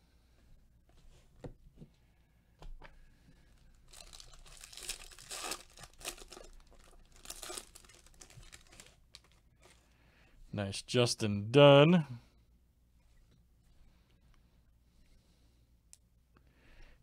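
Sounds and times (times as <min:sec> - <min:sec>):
foil wrapper crinkling: 0:03.5 - 0:09.8.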